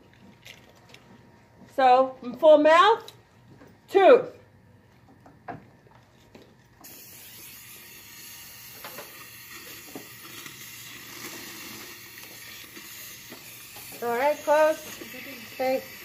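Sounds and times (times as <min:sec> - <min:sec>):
dental suction hissing: 0:06.8 - 0:16.0.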